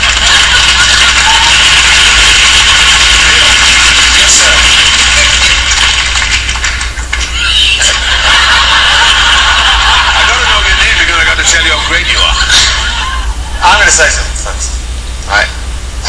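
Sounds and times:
audience applauding and cheering: 0.0s - 12.0s.

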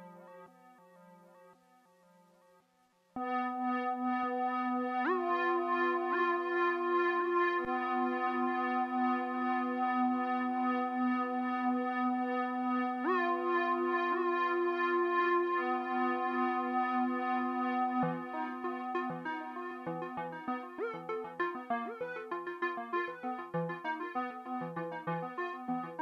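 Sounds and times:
synth string tone sliding in pitch: 19.6s - 25.5s.

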